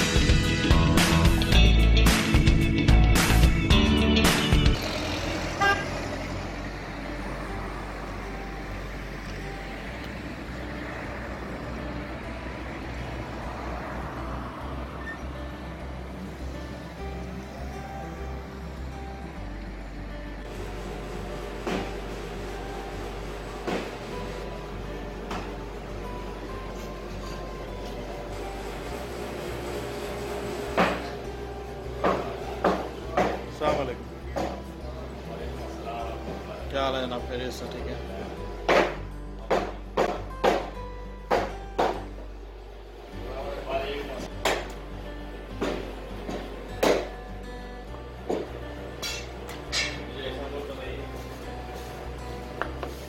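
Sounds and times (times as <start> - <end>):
intro music: 0.0 - 33.2
road traffic rumble: 0.0 - 53.0
car horn toot: 5.6 - 6.0.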